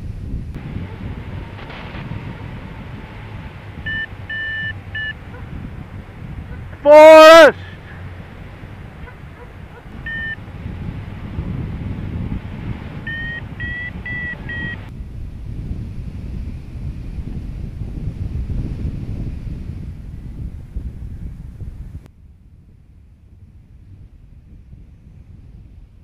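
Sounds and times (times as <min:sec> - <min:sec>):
wind buffeting microphone: 0:00.0 - 0:26.0
variometer beeping: 0:03.8 - 0:05.5, 0:09.0 - 0:10.4, 0:12.9 - 0:14.9.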